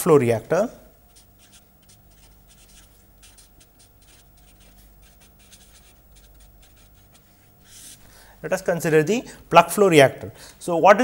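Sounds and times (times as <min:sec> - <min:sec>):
marker scratching on paper: 0:01.1 - 0:08.0.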